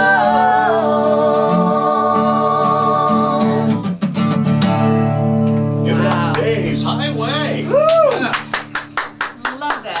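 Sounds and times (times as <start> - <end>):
acoustic song: 0.0 - 10.0
small group clapping: 5.9 - 6.6, 7.7 - 10.0.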